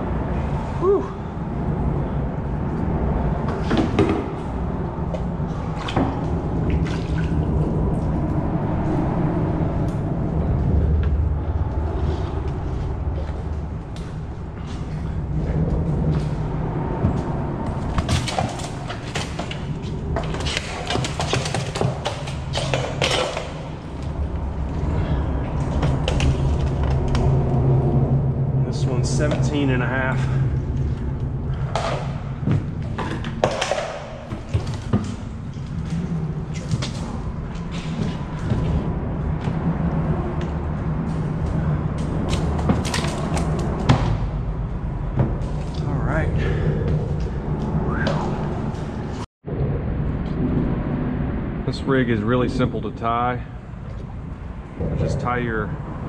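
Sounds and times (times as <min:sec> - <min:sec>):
steady low rumble: 0:00.0 - 0:56.0.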